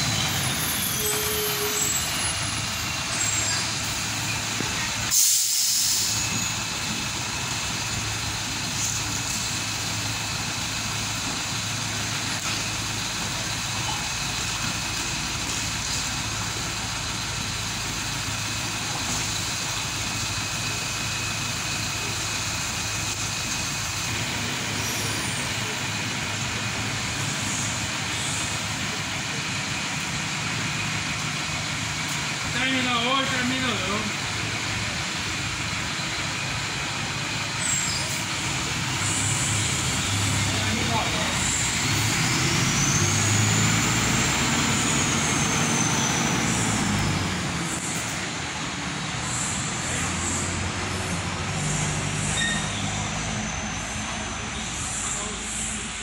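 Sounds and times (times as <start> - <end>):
air brakes hissing: 0.0 - 7.3, 8.7 - 9.6, 51.6 - 56.0
diesel bus engine idling: 0.0 - 56.0.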